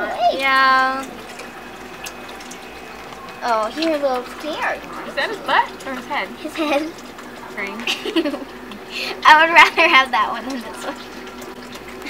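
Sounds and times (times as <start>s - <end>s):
faint hum: 0.0s - 12.0s
running water: 0.0s - 12.0s.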